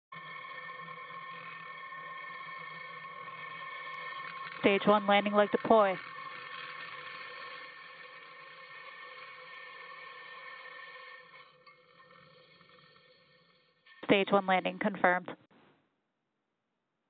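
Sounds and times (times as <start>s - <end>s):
faint tonal hum: 0.2s - 9.6s, 13.8s - 15.4s.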